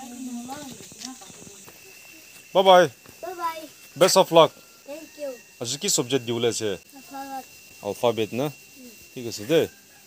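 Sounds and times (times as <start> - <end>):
voice: 0.0 - 1.6
high hiss: 0.0 - 9.6
thin continuous tone: 0.0 - 10.0.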